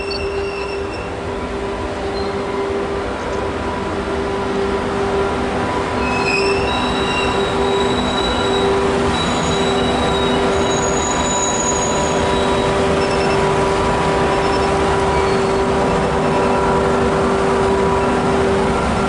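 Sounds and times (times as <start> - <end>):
wheels squealing: 0.0 - 2.6, 5.9 - 18.5
train wheels rumbling: 0.0 - 19.0.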